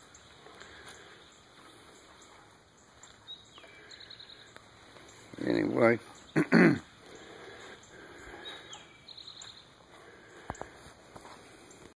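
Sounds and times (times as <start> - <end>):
person clearing throat: 6.4 - 6.9.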